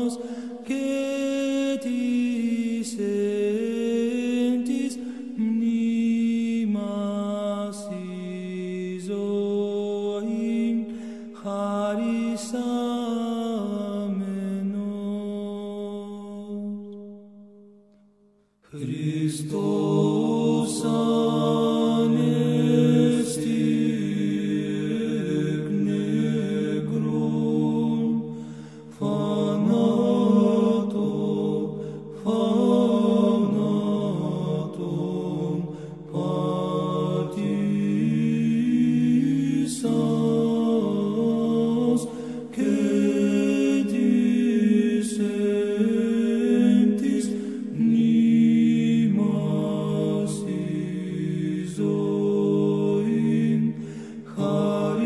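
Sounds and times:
voices chanting: 29.0s - 55.0s.

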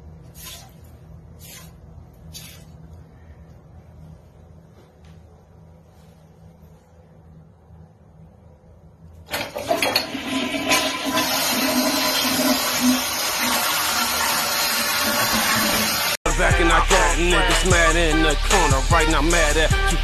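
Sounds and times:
rapping over heavy bass: 16.3s - 20.0s.

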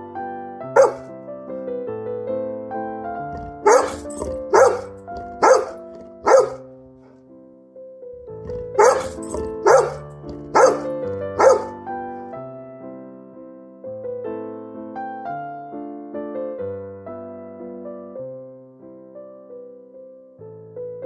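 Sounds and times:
piano music: 0.0s - 21.0s
dog barking: 0.8s - 1.1s, 3.3s - 7.1s, 8.4s - 11.8s.

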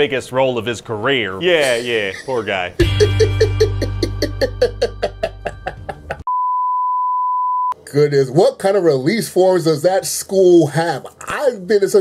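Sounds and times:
plucked notes music: 2.8s - 6.3s.

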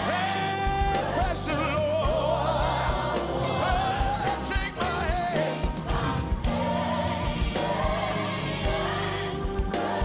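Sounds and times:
band playing steady beat: 0.0s - 10.0s
gospel choir singing: 0.0s - 10.0s.

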